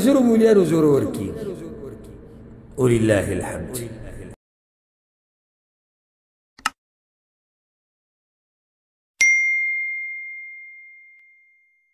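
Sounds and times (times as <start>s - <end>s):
bell ding: 9.2s - 11.9s.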